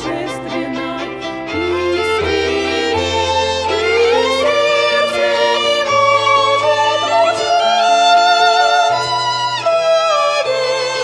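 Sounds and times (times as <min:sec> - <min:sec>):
piano accompaniment: 0:00.0 - 0:11.0
violins playing with vibrato: 0:00.0 - 0:11.0.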